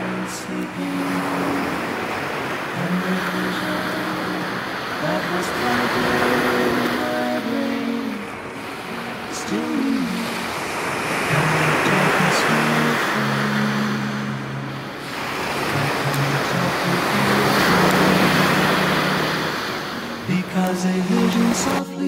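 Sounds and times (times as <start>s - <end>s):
sea waves washing onto shore: 0.0s - 22.0s.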